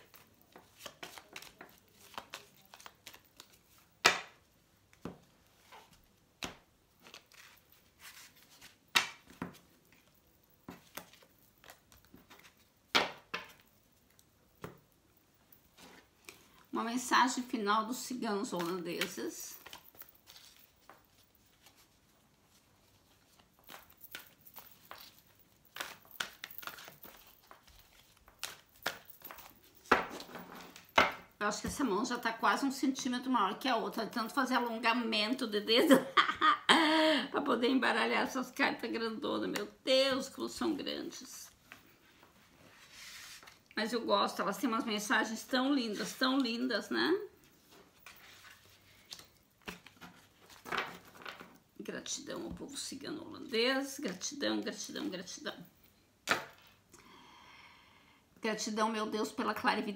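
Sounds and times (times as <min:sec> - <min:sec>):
cards being shuffled: 0:00.0 - 0:04.4, 0:05.0 - 0:10.1, 0:10.7 - 0:13.7, 0:18.4 - 0:22.0, 0:23.0 - 0:31.8, 0:42.7 - 0:43.7, 0:47.7 - 0:51.6.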